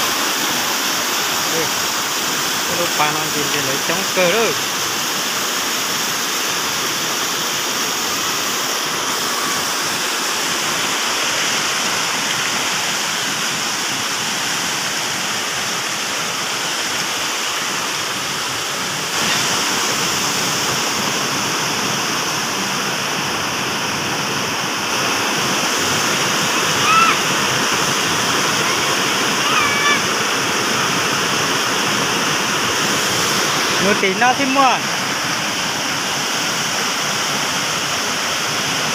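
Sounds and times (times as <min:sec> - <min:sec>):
waterfall pouring over rocks: 0:00.0 - 0:38.9.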